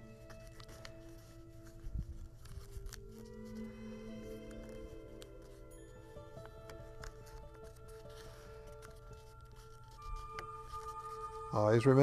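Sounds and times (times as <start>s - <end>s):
paper being folded: 0.0s - 12.0s
quiet background music: 0.0s - 12.0s.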